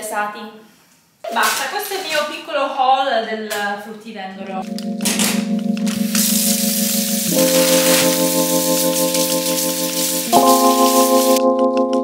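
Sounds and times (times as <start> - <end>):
keyboard music with chords: 4.4 - 12.0
tap running water: 5.8 - 11.4.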